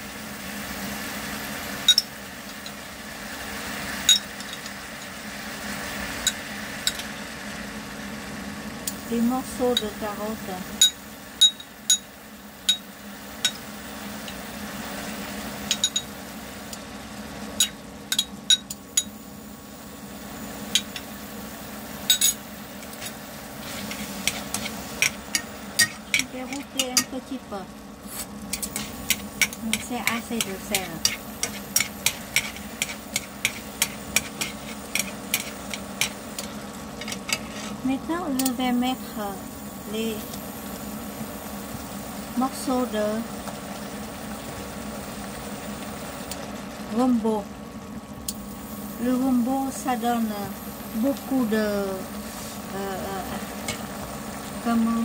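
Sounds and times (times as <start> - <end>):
low background hum: 0.0 - 55.0
chopsticks stirring food in pot: 22.2 - 27.3, 28.5 - 37.9.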